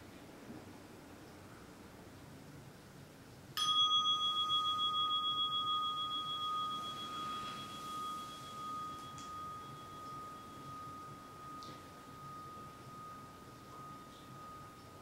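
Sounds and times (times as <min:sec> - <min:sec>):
meditation bell ringing: 0:03.6 - 0:15.0.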